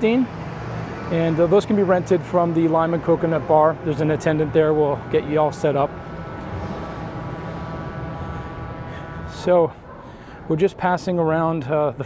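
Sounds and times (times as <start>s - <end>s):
mechanical hum: 0.0s - 11.3s
faint high whine: 0.0s - 11.6s.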